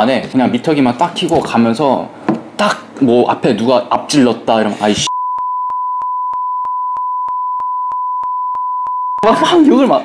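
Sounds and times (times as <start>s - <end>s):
high-pitched censor beep: 5.1s - 9.4s.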